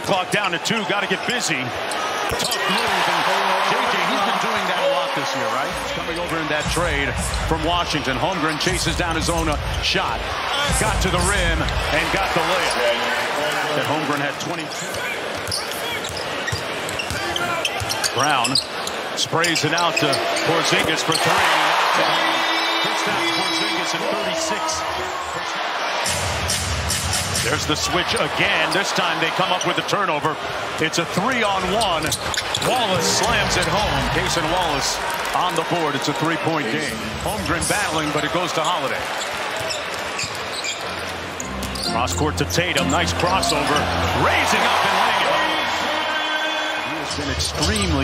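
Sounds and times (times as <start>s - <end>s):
arena crowd noise: 0.0s - 48.0s.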